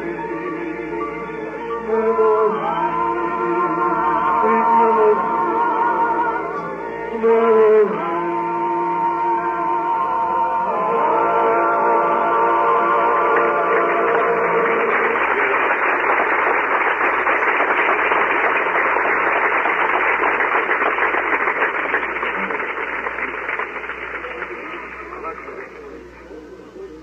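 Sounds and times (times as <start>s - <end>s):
audience applauding: 12.1s - 25.8s.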